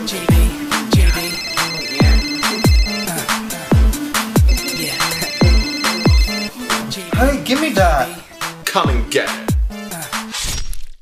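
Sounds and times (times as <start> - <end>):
electronic music with deep bass: 0.3 - 6.5
phone trilling ring: 1.0 - 3.4, 4.5 - 6.6.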